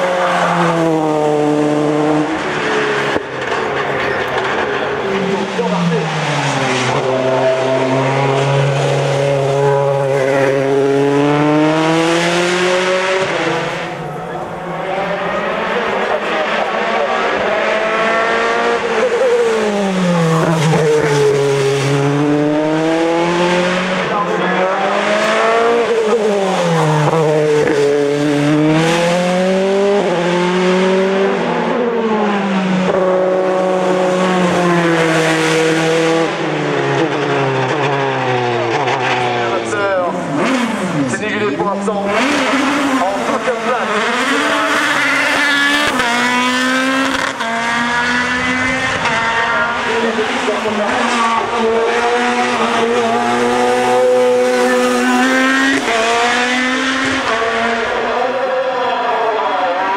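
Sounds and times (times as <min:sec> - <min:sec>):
race car engine revving through gears: 0:00.0 - 0:59.9
race car pulling away: 0:00.0 - 0:59.9.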